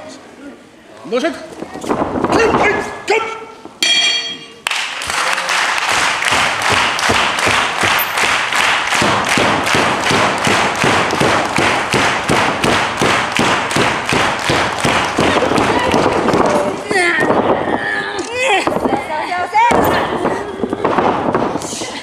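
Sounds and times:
ring bell ringing: 0:03.8 - 0:04.6
crowd clapping in unison: 0:04.6 - 0:17.4.

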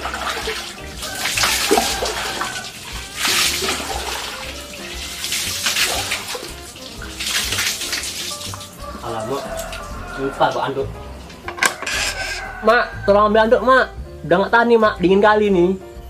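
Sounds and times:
water pouring and splashing: 0:00.0 - 0:12.7
background music: 0:00.0 - 0:16.0.

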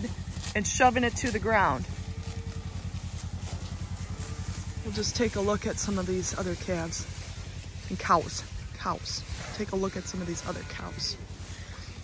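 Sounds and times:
small engine idling: 0:00.0 - 0:12.0.

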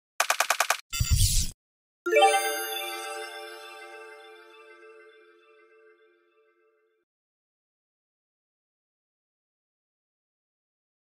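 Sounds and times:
sharp clicks: 0:00.2 - 0:00.8.

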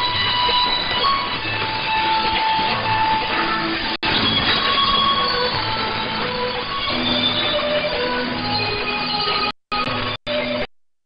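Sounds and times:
faint music through static: 0:00.0 - 0:10.7.

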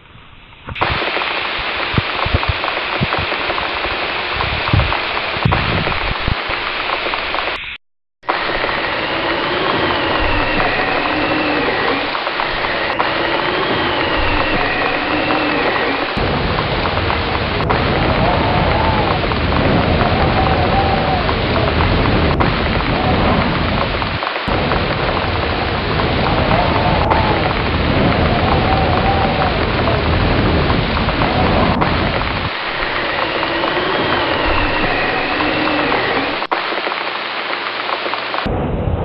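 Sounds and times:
heavy rain on a roof: 0:00.7 - 0:07.6, 0:08.2 - 0:39.0
deep rumble: 0:08.2 - 0:36.6, 0:38.4 - 0:39.0.

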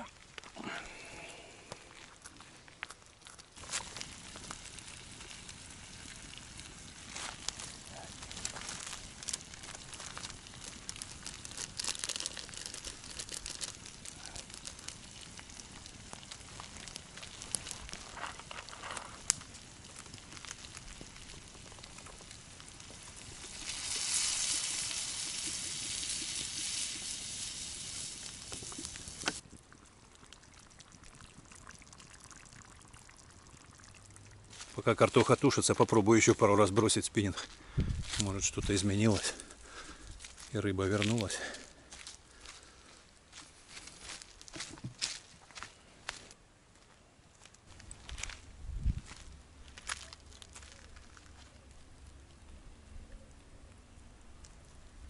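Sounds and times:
wood fire crackling: 0:00.0 - 0:55.0
water pouring from bottle: 0:02.0 - 0:20.8.

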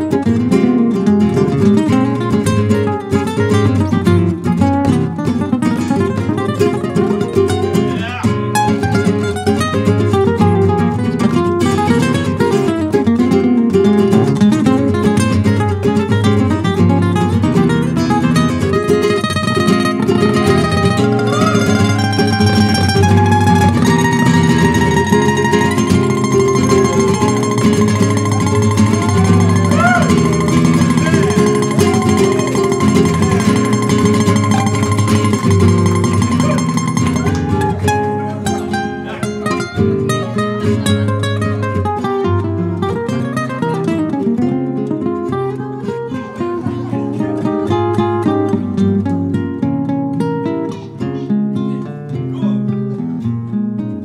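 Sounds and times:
plucked guitars playing ballad: 0:00.0 - 0:54.0
long held high note: 0:20.4 - 0:37.8.

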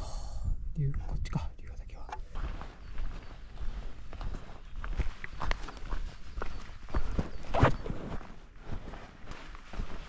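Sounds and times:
man's breathy whispered voice: 0:00.0 - 0:02.2.

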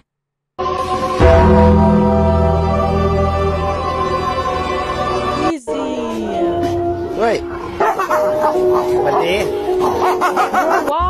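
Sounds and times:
background music tone: 0:00.6 - 0:11.0
dog barking and yipping: 0:07.5 - 0:11.0.

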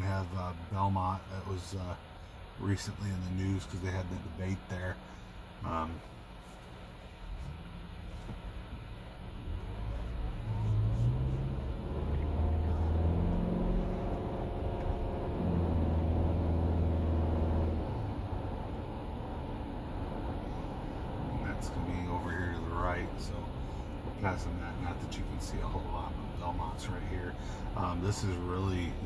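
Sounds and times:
engine hum: 0:00.0 - 0:29.0
faint electric whine: 0:00.0 - 0:29.0
road noise: 0:00.0 - 0:29.0.

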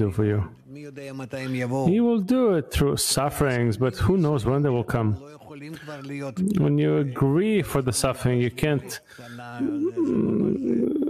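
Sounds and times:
person saying uhh: 0:06.4 - 0:06.8, 0:09.6 - 0:11.0.

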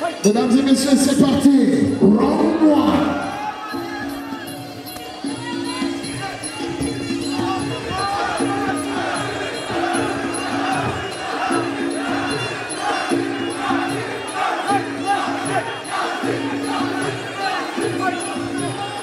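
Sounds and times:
background music: 0:00.0 - 0:19.0
crowd cheering and shouting: 0:00.0 - 0:19.0.

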